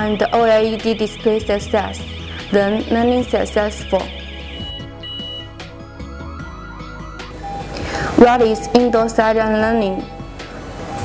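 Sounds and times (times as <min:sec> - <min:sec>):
burglar alarm siren warbling: 0:00.0 - 0:10.4.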